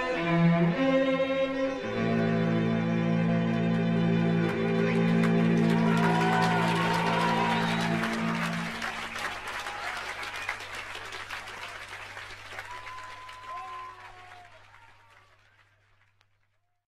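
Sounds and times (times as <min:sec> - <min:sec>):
audience applause: 0:03.4 - 0:16.6.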